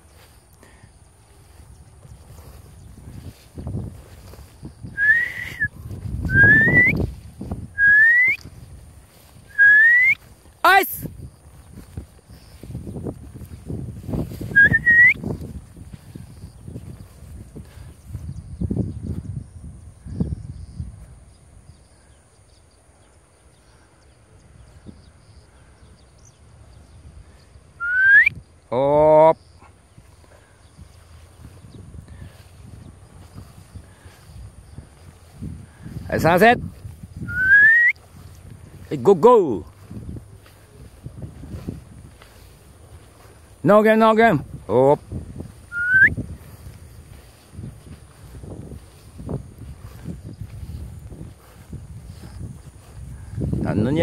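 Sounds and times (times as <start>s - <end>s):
wavering whistle burst: 4.9s - 7.0s, 7.8s - 8.4s, 9.5s - 10.2s, 14.5s - 15.2s, 27.8s - 28.3s, 37.2s - 38.0s, 45.7s - 46.2s
rising whistle blasts: 4.9s - 7.1s, 7.8s - 8.4s, 9.5s - 10.2s, 14.5s - 15.2s, 27.8s - 28.3s, 37.2s - 38.0s, 45.6s - 46.2s
man's long drawn-out call: 7.8s - 8.4s, 9.5s - 11.0s, 37.2s - 38.0s.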